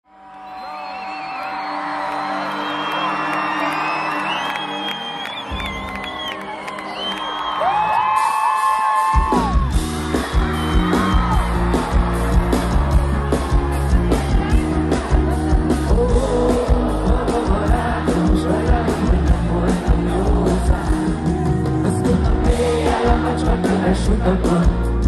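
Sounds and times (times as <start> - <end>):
crowd whooping and yelling: 0.1 - 24.5
heavy bass and drums beat: 9.1 - 25.0.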